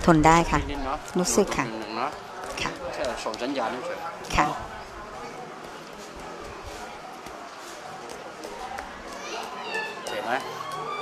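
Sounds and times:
background chatter: 0:00.0 - 0:11.0
children's voices: 0:08.8 - 0:10.1.

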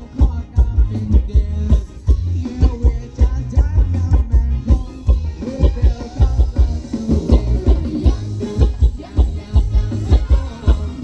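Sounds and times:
heavy drum beat: 0:00.0 - 0:11.0
live dance band music: 0:00.0 - 0:11.0.

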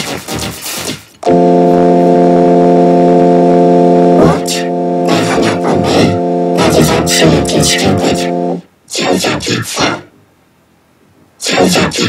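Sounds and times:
steady electronic tone chord: 0:01.2 - 0:08.6.

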